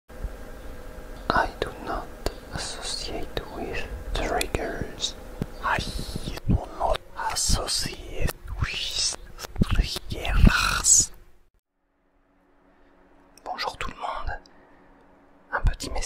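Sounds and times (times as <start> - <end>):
person whispering: 1.2 - 11.2, 13.4 - 14.5, 15.5 - 16.0.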